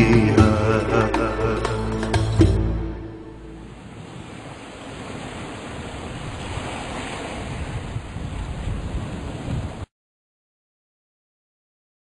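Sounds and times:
sea waves washing onto shore: 0:03.5 - 0:09.9.

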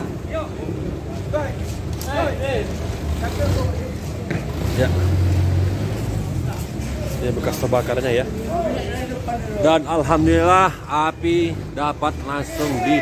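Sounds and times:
voices talking: 0:00.0 - 0:13.0.

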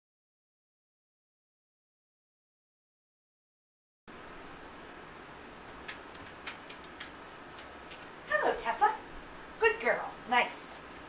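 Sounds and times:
low room hiss: 0:04.1 - 0:11.0.

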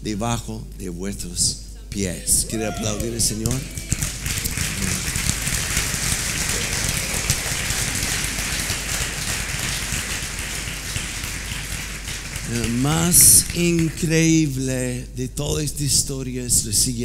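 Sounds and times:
crowd applauding: 0:02.3 - 0:14.5.

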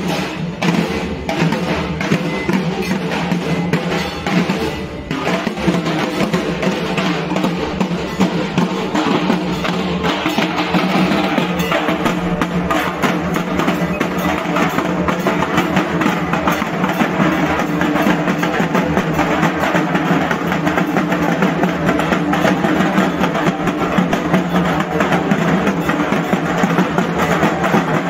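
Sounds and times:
barrel drums beaten fast: 0:00.0 - 0:28.0.

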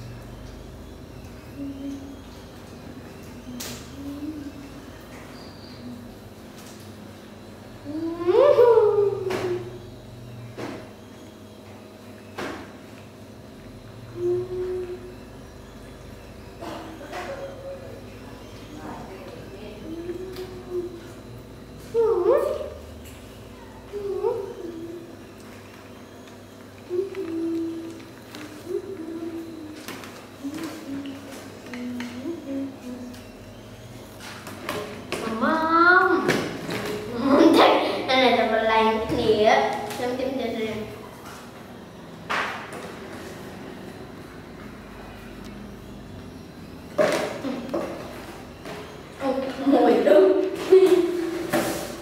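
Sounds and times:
faint hum: 0:00.0 - 0:52.0.

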